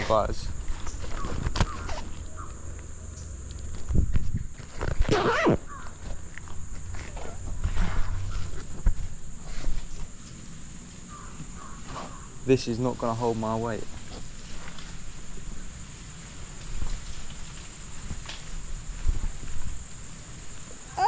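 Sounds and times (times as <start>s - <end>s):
wind rumble on microphone: 3.6s - 5.8s.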